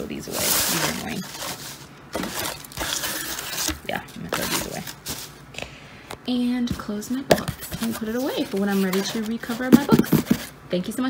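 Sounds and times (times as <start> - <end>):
paper packing filler rustling: 0.0 - 5.4, 7.3 - 10.6
cardboard box handled: 0.3 - 5.4, 6.8 - 10.5.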